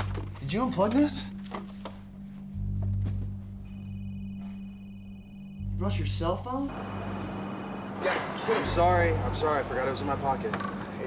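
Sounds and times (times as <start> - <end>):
low steady hum: 0.0 - 8.0
cell phone ringtone: 3.6 - 5.8, 6.7 - 9.0.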